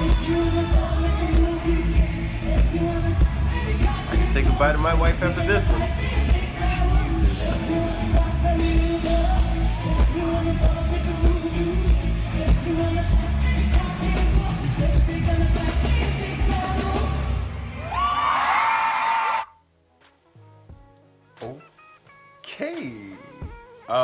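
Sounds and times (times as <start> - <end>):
woman singing: 0.0 - 17.4.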